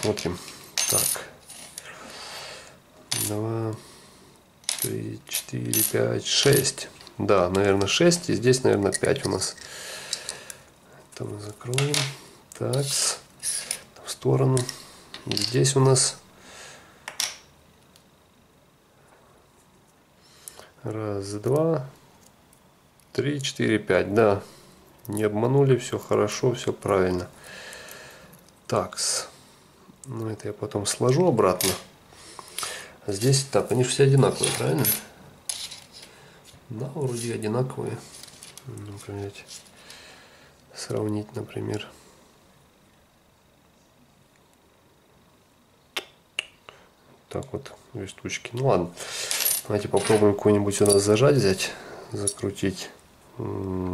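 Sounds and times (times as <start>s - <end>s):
steel blades rustling: 34.2s - 39.8s, 49.1s - 51.2s.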